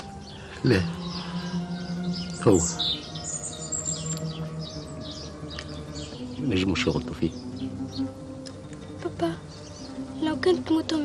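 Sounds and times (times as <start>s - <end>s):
birds chirping: 0.0s - 11.0s.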